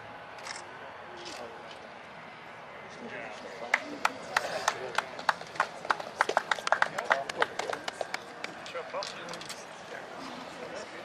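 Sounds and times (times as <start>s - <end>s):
low background voices: 0.6s - 11.0s.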